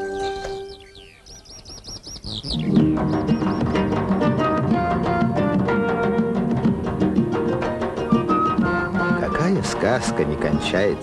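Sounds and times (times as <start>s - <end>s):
birds chirping: 0.0s - 11.0s
held music tones: 2.3s - 11.0s.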